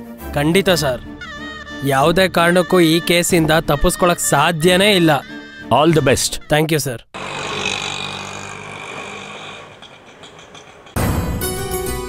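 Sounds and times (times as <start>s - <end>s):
street traffic: 7.2s - 11.0s.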